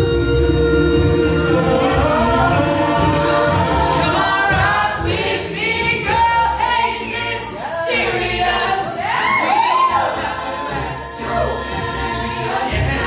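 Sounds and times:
backing vocal harmonies: 0.0 - 13.0.

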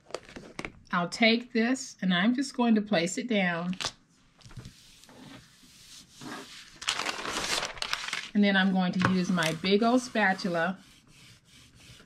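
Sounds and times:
paper rustling: 3.8 - 8.4, 9.0 - 10.4.

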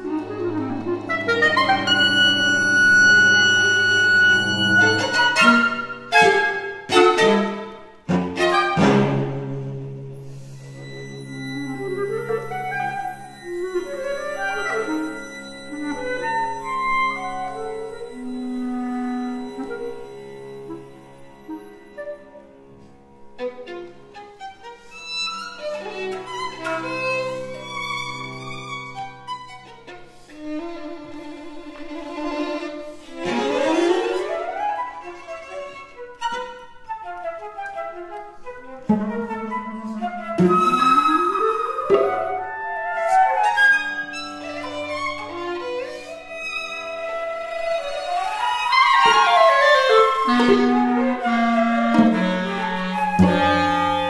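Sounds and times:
flute: 0.0 - 7.7, 10.2 - 23.0, 33.3 - 54.0
cello: 0.0 - 54.0
clarinet: 0.0 - 54.0
violin: 0.0 - 54.0.

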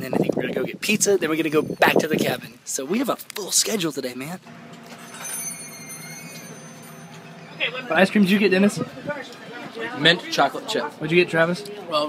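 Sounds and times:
high-pitched mechanical whine: 4.5 - 9.4.

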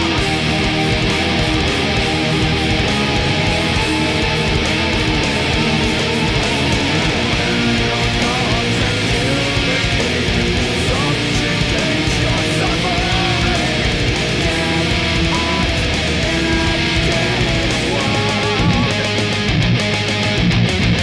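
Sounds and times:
distorted electric guitar riffs: 0.0 - 21.0
metal backing track: 0.0 - 21.0.

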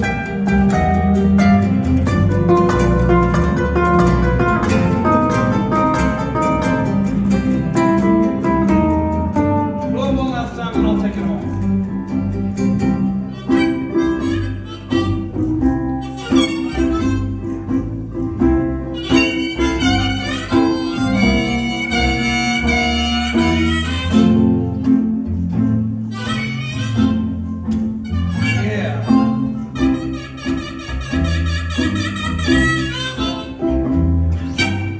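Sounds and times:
plucked bass line: 0.0 - 34.9
strummed ukulele: 0.0 - 34.9
harmonica playing blues: 13.0 - 18.2, 18.8 - 25.2, 25.8 - 34.9.

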